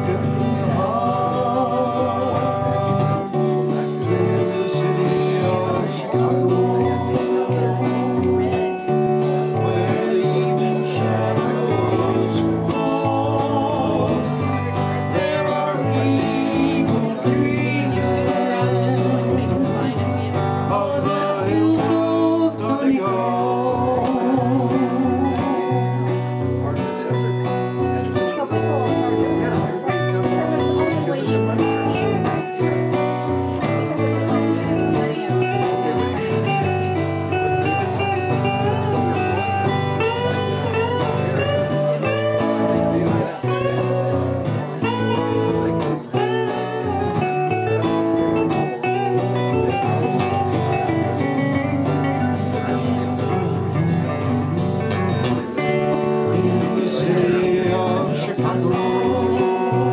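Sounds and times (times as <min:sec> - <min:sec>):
acoustic guitar: 0:00.0 - 0:59.9
electric guitar: 0:00.0 - 0:59.9
folk band playing: 0:00.0 - 0:59.9.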